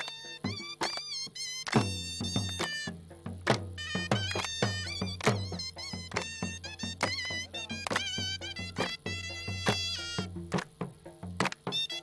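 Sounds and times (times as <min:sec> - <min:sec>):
high wavering melody: 0:03.8 - 0:10.3.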